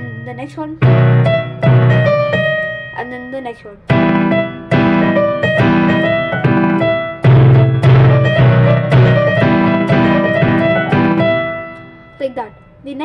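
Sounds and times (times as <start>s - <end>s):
electronic keyboard piano melody: 0.0s - 13.0s
low keyboard chord: 0.0s - 13.0s.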